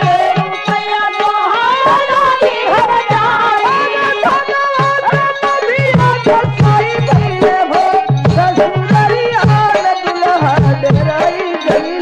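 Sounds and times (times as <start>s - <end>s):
hand drum rhythm: 0.0s - 12.0s.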